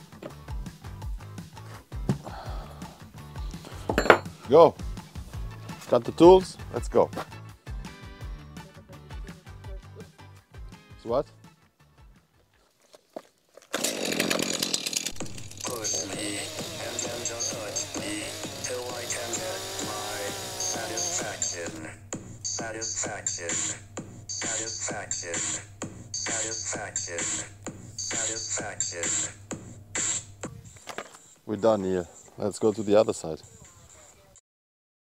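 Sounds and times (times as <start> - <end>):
chainsaw revving: 13.7 - 21.9
steady drum beat: 15.2 - 30.6
song with singing: 15.6 - 23.8, 26.2 - 29.4.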